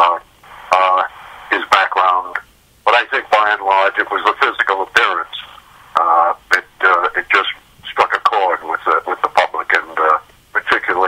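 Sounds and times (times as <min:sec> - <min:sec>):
man talking over telephone: 0:00.0 - 0:11.0.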